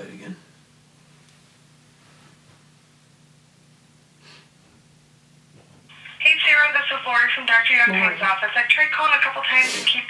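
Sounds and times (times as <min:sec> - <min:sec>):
faint steady hum: 0:00.0 - 0:10.0
woman's voice through phone speaker: 0:05.9 - 0:10.0.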